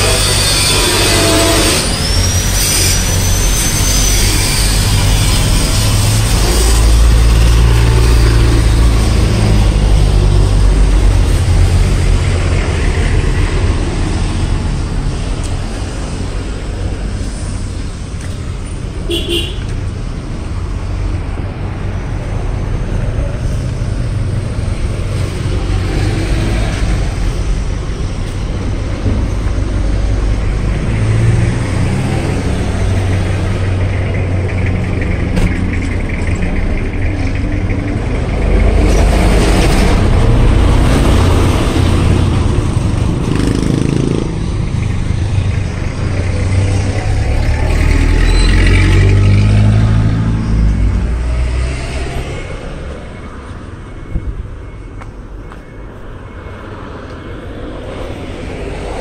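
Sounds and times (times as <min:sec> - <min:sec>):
cars passing close by: 0:00.0 - 0:59.0.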